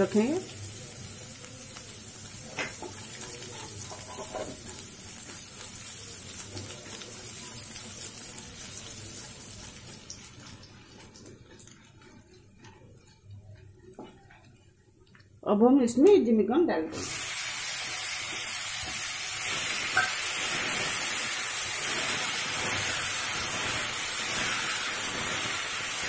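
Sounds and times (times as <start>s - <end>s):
spices sizzling in hot oil: 0.0s - 15.4s, 16.9s - 26.0s.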